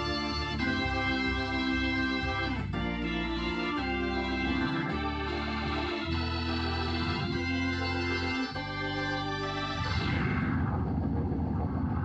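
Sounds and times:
organ sustained tones: 0:00.0 - 0:12.0
deep flickering rumble: 0:09.9 - 0:12.0.

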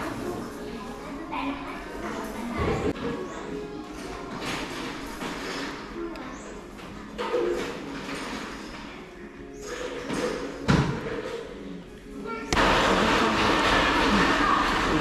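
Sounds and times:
cafe background noise: 0:00.0 - 0:15.0
electric blender whirring: 0:12.6 - 0:15.0.

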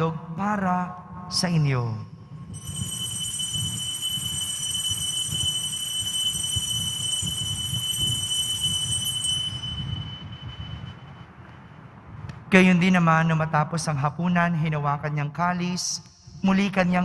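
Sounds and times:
high ringing bells: 0:02.4 - 0:11.9.

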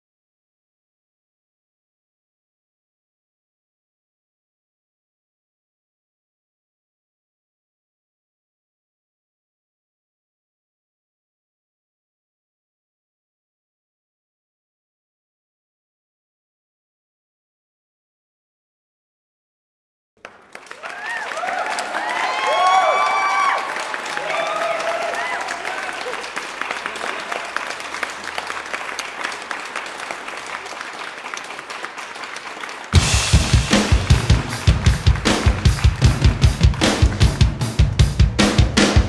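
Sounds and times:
drum-kit music with bass drum: 0:33.0 - 0:39.0.

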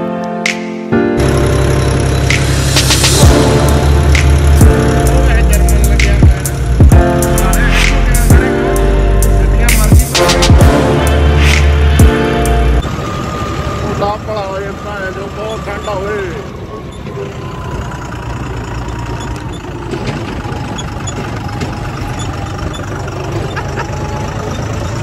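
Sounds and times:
tractor diesel engine running: 0:01.2 - 0:25.0.

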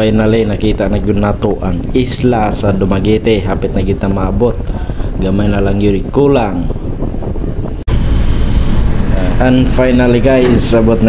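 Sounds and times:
low rumble of ship: 0:00.0 - 0:11.0
wind blowing across microphone: 0:00.0 - 0:11.0.

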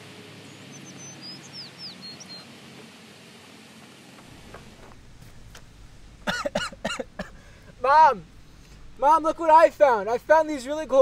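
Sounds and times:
steady outdoor hiss: 0:00.0 - 0:11.0
bird chirping and whistling: 0:00.7 - 0:02.4.

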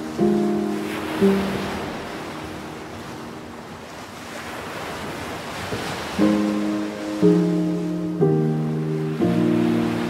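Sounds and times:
soft background music: 0:00.0 - 0:04.0, 0:06.0 - 0:10.0
ocean waves breaking on rocks: 0:00.0 - 0:10.0.

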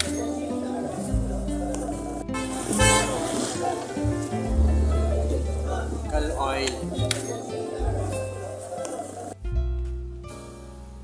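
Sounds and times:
background music with bass: 0:00.0 - 0:11.0
loud horn-like blast: 0:02.3 - 0:03.8.

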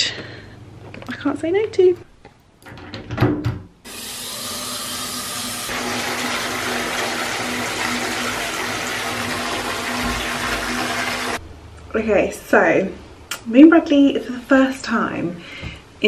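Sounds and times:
bath tap running into tub: 0:03.9 - 0:11.4.

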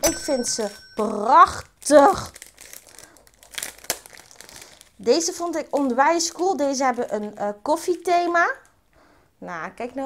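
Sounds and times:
packaging crinkling: 0:00.4 - 0:08.7.

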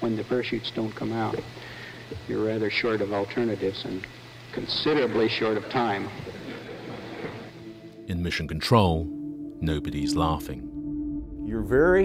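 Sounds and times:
quiet background music: 0:00.0 - 0:01.5, 0:02.2 - 0:12.0
recording hiss and hum: 0:00.0 - 0:12.0.

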